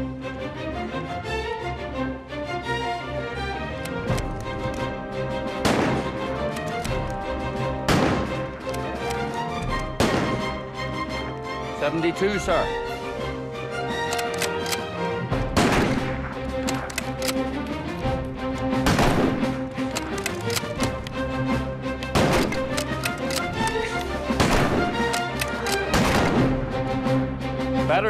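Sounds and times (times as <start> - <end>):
background music with held notes: 0.0 - 28.0
rifle shots with echo: 5.6 - 7.0, 7.9 - 9.2, 10.0 - 10.6, 15.5 - 17.5, 18.8 - 21.0, 22.1 - 26.6.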